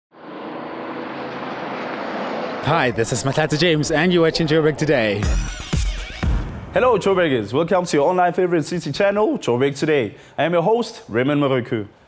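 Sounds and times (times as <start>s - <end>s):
aircraft engine drone: 0.1s - 6.8s.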